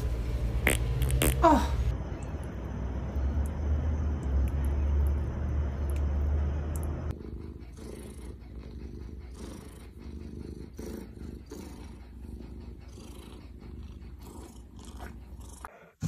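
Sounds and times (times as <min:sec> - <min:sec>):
cat purring: 0:07.1 - 0:15.9.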